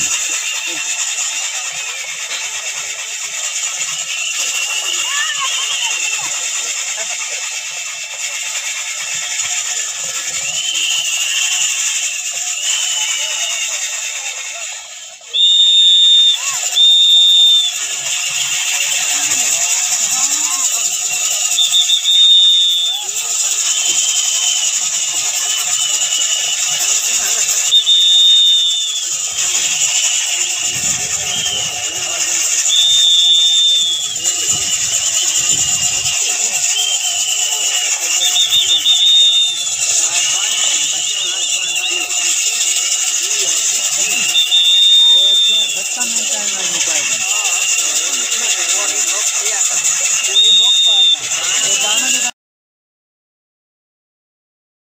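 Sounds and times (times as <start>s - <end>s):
flour mill turning: 0.0s - 52.3s
high whistle-like squeal: 0.0s - 52.3s
murmur of crowd: 0.0s - 52.3s.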